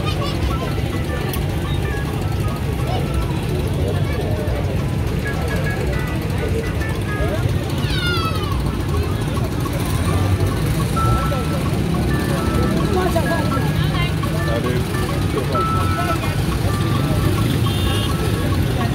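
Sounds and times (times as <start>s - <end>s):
crowd chatter: 0.0s - 18.9s
music playing: 0.0s - 18.9s
road traffic rumble: 0.0s - 18.9s.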